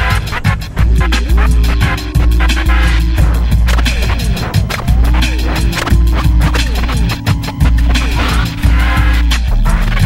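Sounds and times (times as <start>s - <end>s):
loud electronic music: 0.0s - 10.0s
sliding pitch sweeps: 0.7s - 9.6s.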